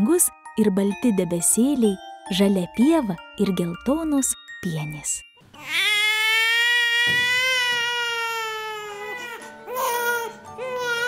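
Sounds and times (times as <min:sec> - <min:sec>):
newborn baby crying: 0:05.6 - 0:11.0.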